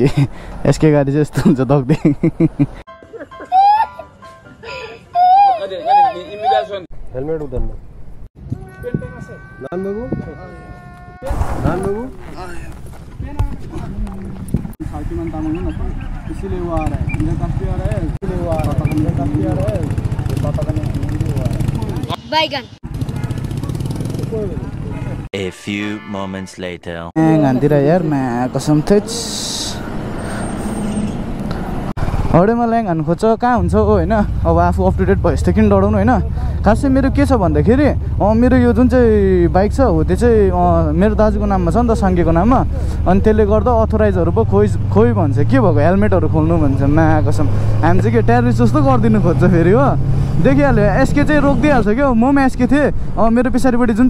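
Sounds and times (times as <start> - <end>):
motor vehicle road noise: 0.0 - 25.4, 27.0 - 54.0
young boy crying: 3.1 - 6.8, 8.6 - 11.2.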